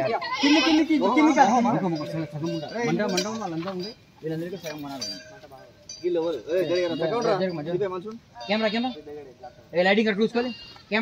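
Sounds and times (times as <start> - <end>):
voices calling out together: 0.0 - 11.0.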